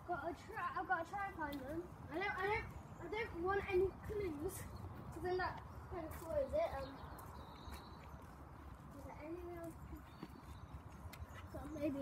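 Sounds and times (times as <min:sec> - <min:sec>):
footsteps on paving slabs: 0:00.1 - 0:12.0.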